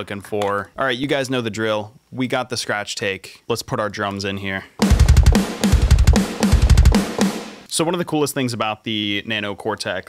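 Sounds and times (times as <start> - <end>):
rapid kick drum: 4.8 - 7.7
snare and tom hits: 4.8 - 7.7.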